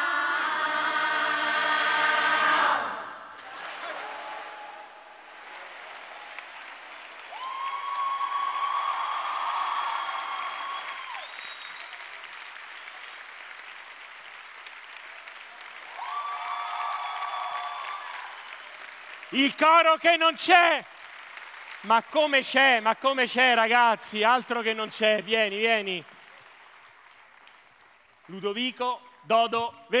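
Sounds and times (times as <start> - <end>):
large audience applauding: 3.4 - 28.7.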